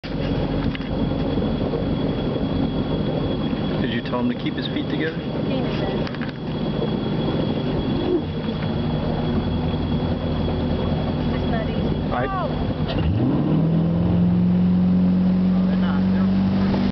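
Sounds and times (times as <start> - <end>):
boat engine running: 0.0 - 16.9
water noise: 0.0 - 16.9
wind: 0.0 - 16.9.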